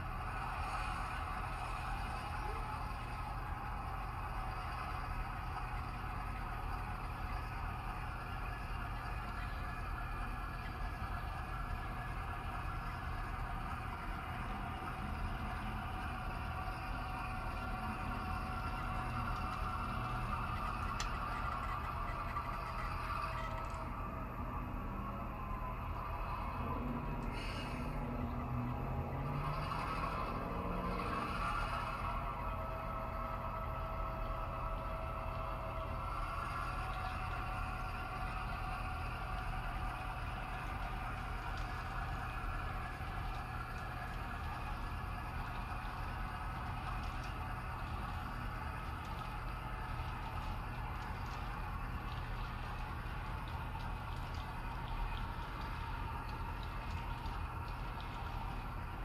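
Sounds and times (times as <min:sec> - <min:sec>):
model train wheels on rails: 0:00.0 - 0:59.0.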